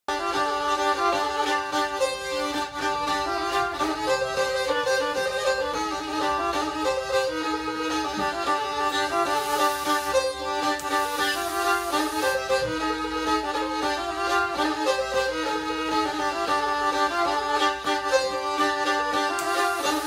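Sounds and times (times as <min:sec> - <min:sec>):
bowed fiddle melody: 0:00.1 - 0:20.0.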